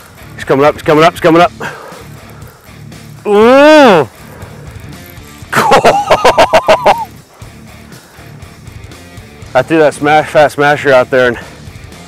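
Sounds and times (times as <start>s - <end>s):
quiet background music: 0.0s - 12.0s
man crying out excitedly: 3.3s - 4.1s, 5.6s - 7.2s
man laughing: 5.5s - 7.1s.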